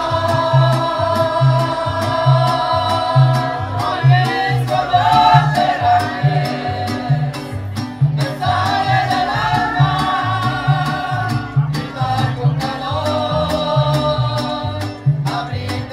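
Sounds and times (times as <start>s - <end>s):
bass guitar line: 0.0s - 15.9s
strummed guitars: 0.0s - 15.9s.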